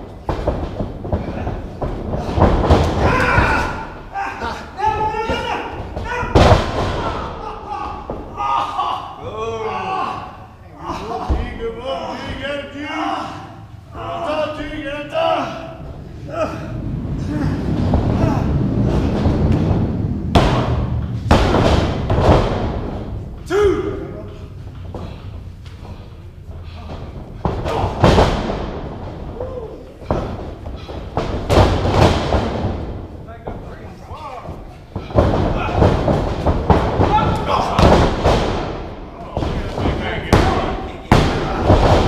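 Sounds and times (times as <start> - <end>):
bodies slamming onto ring canvas: 0.0 - 10.3, 15.4 - 42.0
low rumble of voices: 0.0 - 42.0
people shouting: 2.2 - 18.9, 23.4 - 25.2, 26.7 - 28.3, 29.3 - 31.0, 34.1 - 38.3.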